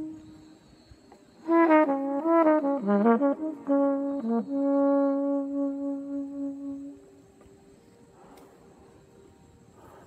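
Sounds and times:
flugelhorn holding a low note: 0.0s - 0.6s, 1.4s - 7.3s.

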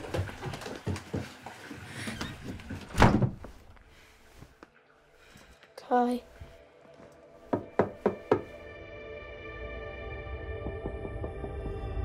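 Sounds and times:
knocks on a door: 7.5s - 8.6s.

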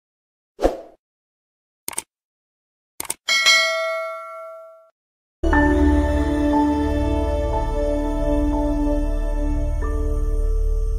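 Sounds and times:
notification bell ding: 3.3s - 4.9s
music: 5.4s - 10.9s.

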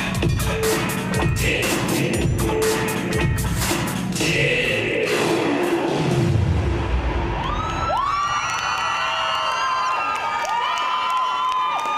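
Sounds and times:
dance music: 0.0s - 7.7s
audience cheering: 7.2s - 11.9s.

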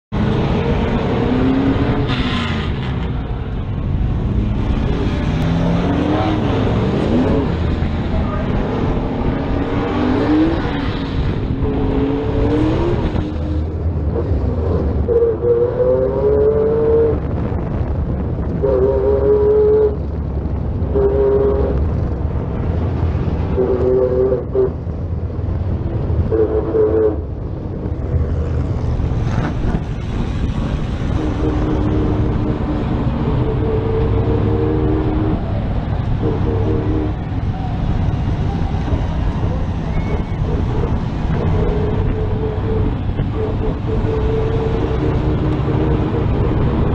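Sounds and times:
stock car engine revving: 0.1s - 17.3s, 25.7s - 46.9s.

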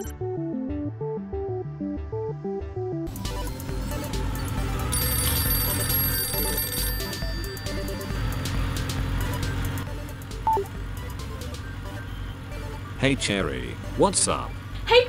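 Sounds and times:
background music: 0.0s - 15.0s
mobile phone ringing: 4.4s - 9.7s, 10.5s - 10.8s.

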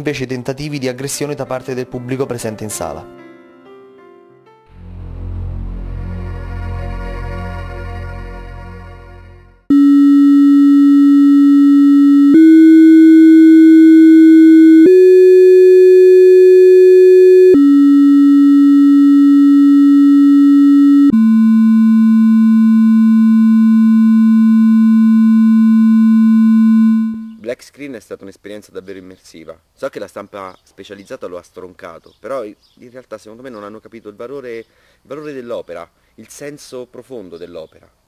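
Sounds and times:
electronic sine-like tones: 9.7s - 27.4s.

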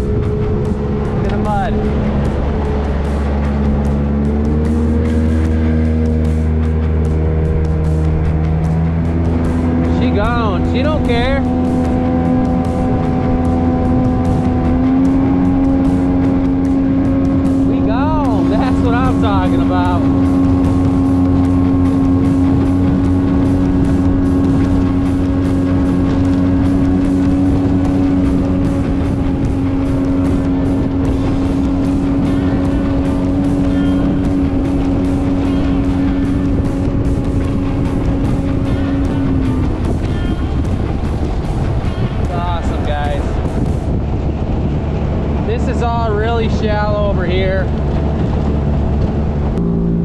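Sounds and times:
outboard motor whine: 0.0s - 50.0s
rushing water: 0.0s - 50.0s
wind: 0.0s - 50.0s.

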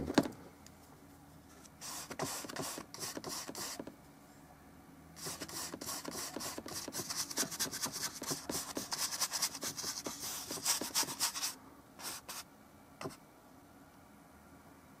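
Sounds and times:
paintbrush scrubbing on canvas: 1.8s - 3.8s, 5.2s - 12.4s.

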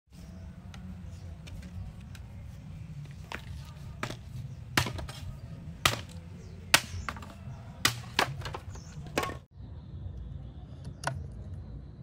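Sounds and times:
machete chopping bamboo: 3.2s - 9.4s.

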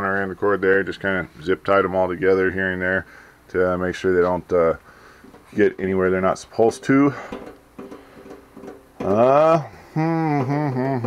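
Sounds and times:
man speaking: 0.0s - 4.8s, 5.5s - 7.3s, 9.0s - 11.0s
faint low humming: 0.0s - 11.0s.

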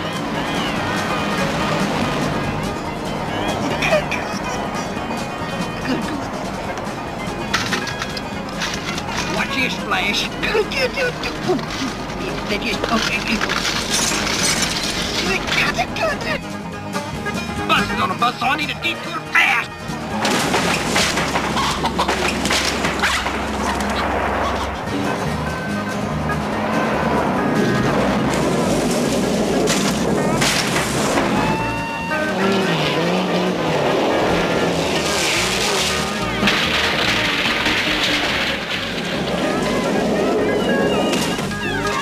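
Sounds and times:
chase music: 0.0s - 12.9s, 15.1s - 42.0s
race car engines: 0.0s - 42.0s
car smashing through wooden fence: 13.5s - 15.7s, 20.0s - 24.2s, 28.3s - 31.7s, 33.9s - 41.6s.

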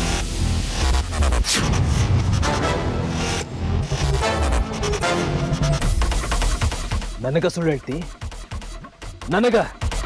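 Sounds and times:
dramatic background score: 0.0s - 10.0s.

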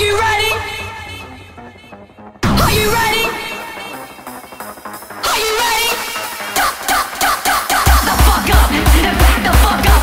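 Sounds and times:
heavy kick drum pounding: 7.8s - 10.0s.

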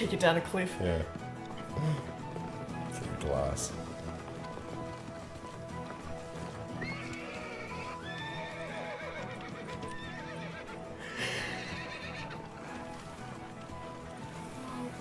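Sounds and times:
background music: 0.0s - 15.0s
hooves clip-clopping: 0.0s - 15.0s
horse whinnying: 5.6s - 13.6s.

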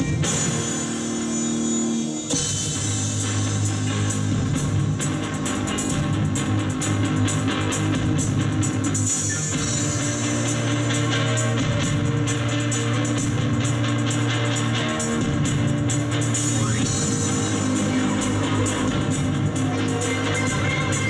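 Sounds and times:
instrumental rock band: 0.0s - 21.0s.

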